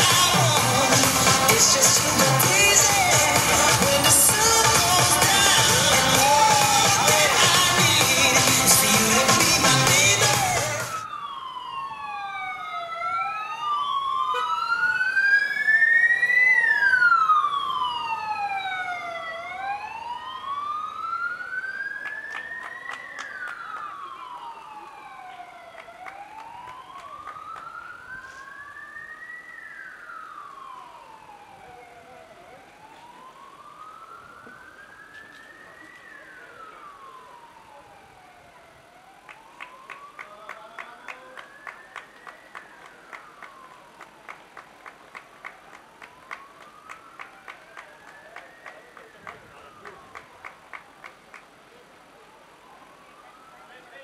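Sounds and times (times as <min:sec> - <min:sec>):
emergency vehicle sirens wailing: 0:00.0 - 0:54.0.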